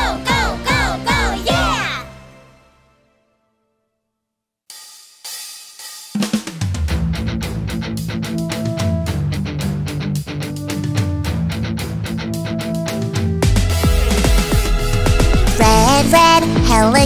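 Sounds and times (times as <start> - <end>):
children's song with drums: 0.0 - 2.1, 4.7 - 7.7, 13.0 - 17.0.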